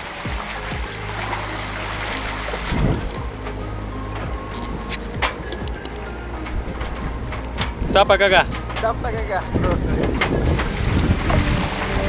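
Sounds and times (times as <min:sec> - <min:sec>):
water rushing along hulls: 0:00.0 - 0:12.0
wind buffeting microphone: 0:00.0 - 0:12.0.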